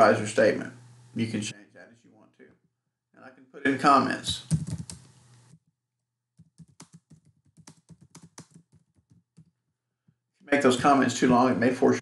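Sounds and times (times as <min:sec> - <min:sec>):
computer keyboard typing: 0:04.4 - 0:05.1, 0:06.4 - 0:09.6.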